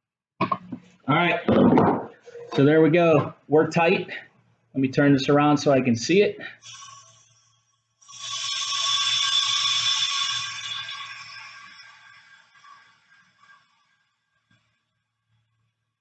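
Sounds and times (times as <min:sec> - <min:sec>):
compressed air hissing: 0:06.6 - 0:11.3.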